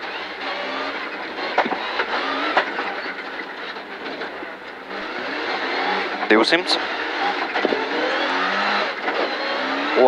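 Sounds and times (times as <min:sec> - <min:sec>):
rally car engine accelerating: 0:00.0 - 0:10.0.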